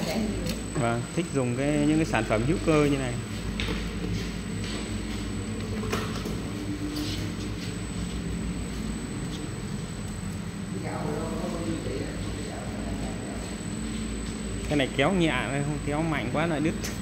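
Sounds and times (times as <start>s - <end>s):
machine motor hum: 0.0s - 17.0s.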